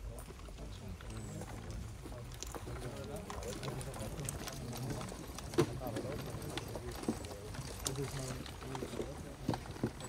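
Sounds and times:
small clicks and knocks: 0:00.2 - 0:10.0.

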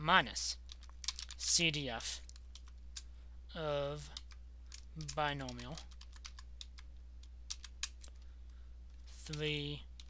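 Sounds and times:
keyboard typing: 0:00.6 - 0:01.4, 0:02.2 - 0:03.1, 0:04.0 - 0:08.3.

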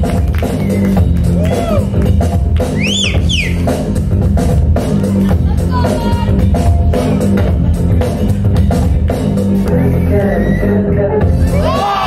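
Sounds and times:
break music with heavy bass: 0:00.0 - 0:12.0.

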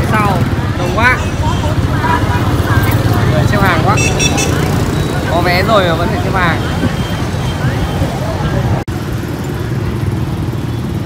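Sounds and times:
crowd chatter: 0:00.0 - 0:08.8
motorbike engines rumbling: 0:00.0 - 0:11.0.

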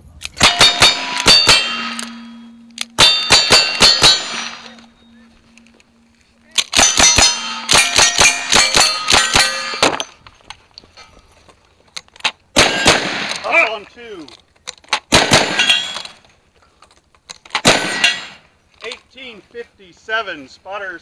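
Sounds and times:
rifle shots: 0:00.4 - 0:04.8, 0:06.6 - 0:10.1, 0:12.5 - 0:13.5, 0:15.1 - 0:16.2, 0:17.6 - 0:18.4
ring of steel targets: 0:00.4 - 0:05.7, 0:06.5 - 0:10.3, 0:15.2 - 0:16.2, 0:17.7 - 0:18.5.

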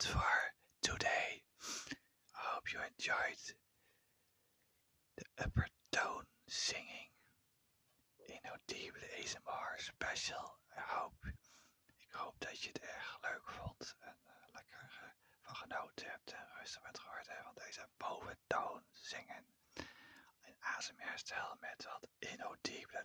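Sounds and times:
whispered overtone singing: 0:05.2 - 0:07.1.

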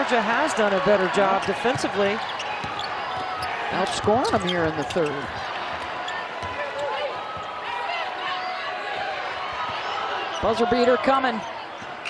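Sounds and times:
crowd noise hum: 0:00.0 - 0:12.0
ball bouncing on hardwood court: 0:01.4 - 0:07.6.

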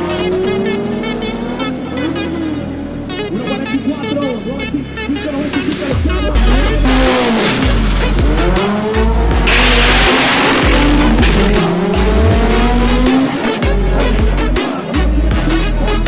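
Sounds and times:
electronic music with heavy bass: 0:03.2 - 0:16.0
drag car engine accelerating: 0:05.6 - 0:16.0
car rushing past: 0:08.5 - 0:13.6.

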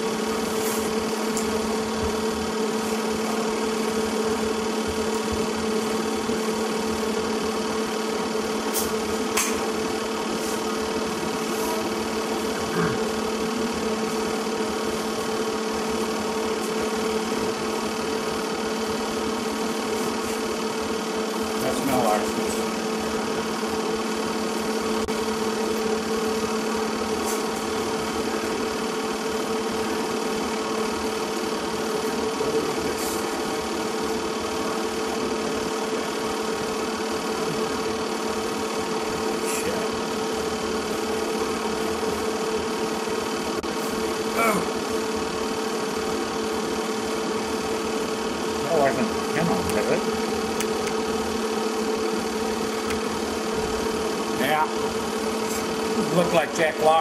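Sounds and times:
steady mechanical hum: 0:00.0 - 0:57.0.

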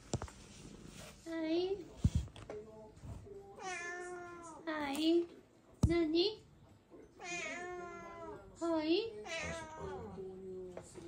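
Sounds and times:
cat meowing: 0:07.2 - 0:08.4, 0:09.2 - 0:10.2.

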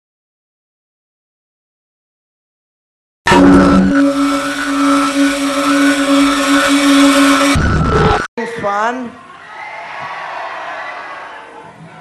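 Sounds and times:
electronic drone with hiss: 0:03.3 - 0:08.3
rough noise burst: 0:03.3 - 0:08.3.

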